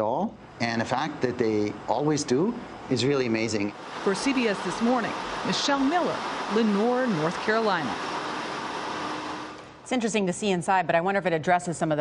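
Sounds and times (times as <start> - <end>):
server cooling fans whooshing: 0.0 - 10.2
faint steady hum: 0.0 - 12.0.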